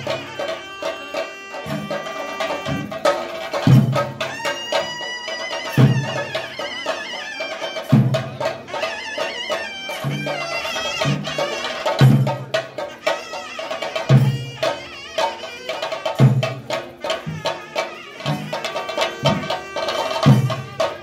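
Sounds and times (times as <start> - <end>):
drums played in rapid strokes: 0.0 - 21.0.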